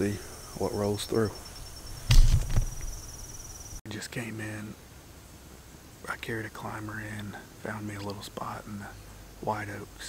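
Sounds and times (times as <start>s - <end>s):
high insect trill: 0.0s - 3.8s
camera handling thump and rustle: 2.1s - 2.9s.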